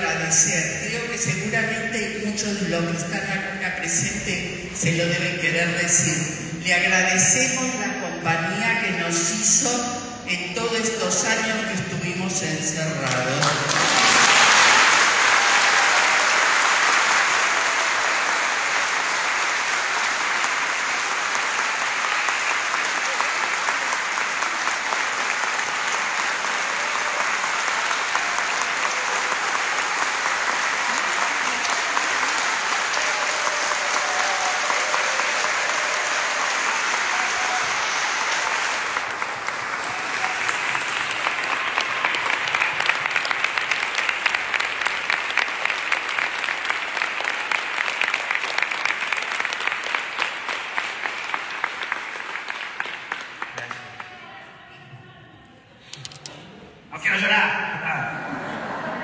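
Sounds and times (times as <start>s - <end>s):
congregation applauding: 0.0s - 0.2s, 13.0s - 54.5s.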